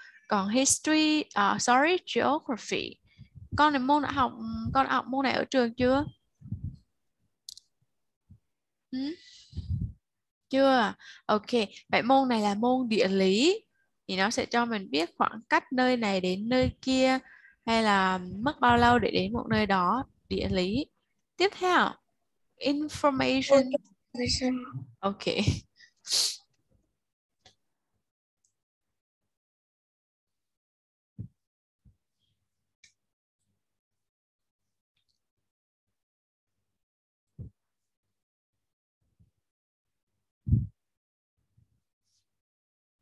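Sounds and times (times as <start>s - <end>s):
breath burst into microphone: 9.2s - 10.0s
faint low muffled sound: 23.1s - 25.6s.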